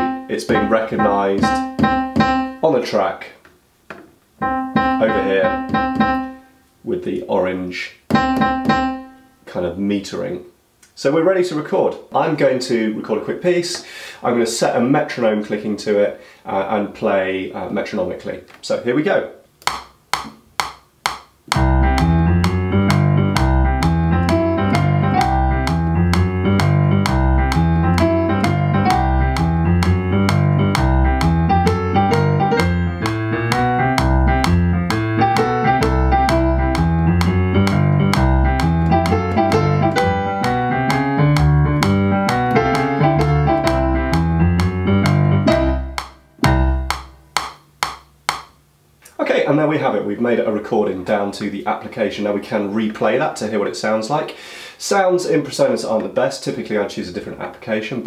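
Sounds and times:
metronome click: 0.0s - 2.6s, 4.4s - 6.3s, 19.6s - 48.6s
stage piano playing: 0.0s - 2.6s, 4.4s - 6.4s, 8.1s - 9.2s, 21.5s - 47.8s.

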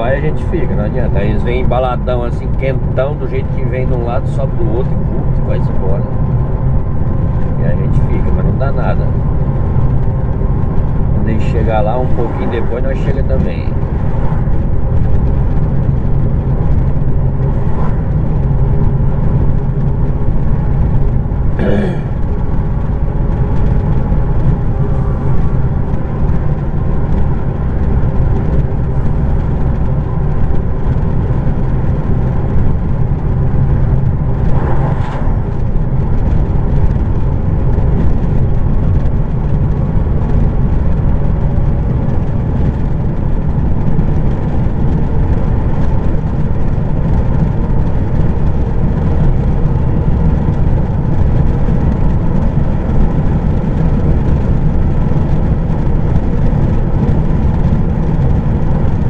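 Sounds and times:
diesel truck engine running: 0.0s - 59.0s
tyre and road noise: 0.0s - 59.0s
vehicles passing by: 0.0s - 59.0s.

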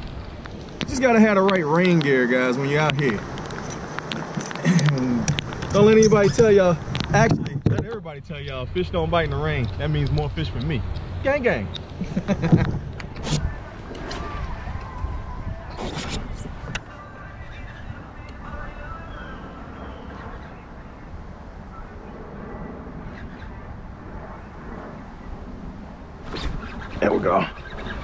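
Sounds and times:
wind rumble on microphone: 0.0s - 28.0s.

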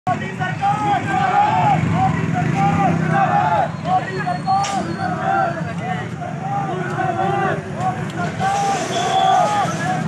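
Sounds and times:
men chanting slogans: 0.1s - 10.0s.

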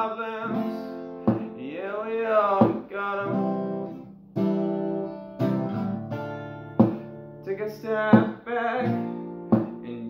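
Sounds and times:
person singing: 0.0s - 3.9s, 7.5s - 10.0s
acoustic guitar strummed: 0.0s - 10.0s.

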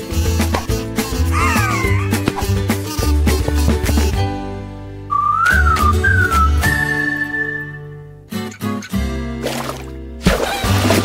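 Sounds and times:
light backing music with bass beat: 0.0s - 7.2s
whistled jingle: 5.1s - 8.0s.

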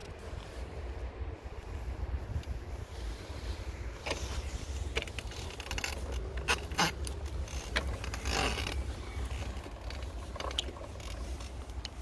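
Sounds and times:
rustle: 0.0s - 12.0s
wind rumble on microphone: 0.0s - 12.0s.

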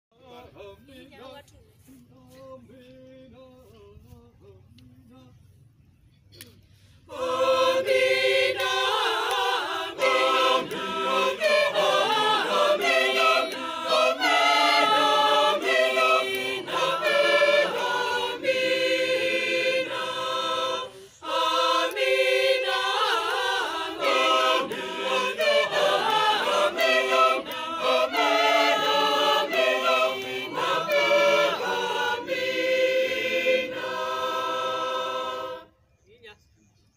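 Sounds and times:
choir singing unaccompanied: 7.1s - 35.8s.

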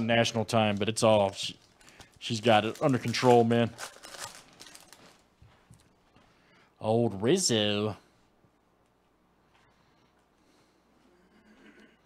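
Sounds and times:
foil wrapper crinkling: 0.1s - 5.3s
cards rustling: 0.2s - 5.3s.

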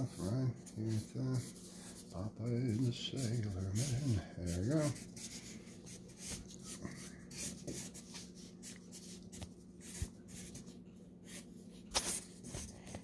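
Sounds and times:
marker drawing on paper: 0.0s - 13.0s.

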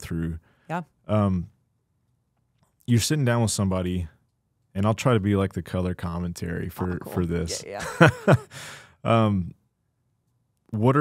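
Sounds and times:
laugh-like exclamation: 6.8s - 8.5s
breathy sigh: 8.4s - 9.0s.

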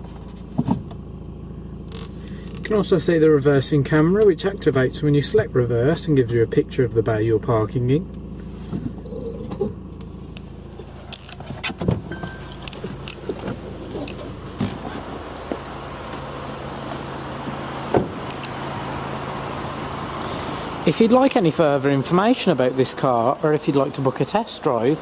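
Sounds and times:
diesel engine idling: 0.0s - 25.0s.

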